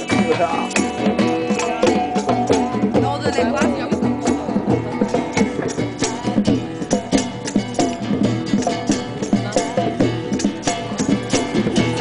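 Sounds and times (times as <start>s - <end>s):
music with busy percussion beat: 0.0s - 12.0s.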